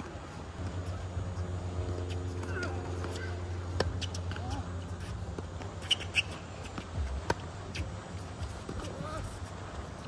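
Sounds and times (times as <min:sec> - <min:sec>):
shoes tapping on court: 0:00.0 - 0:10.0.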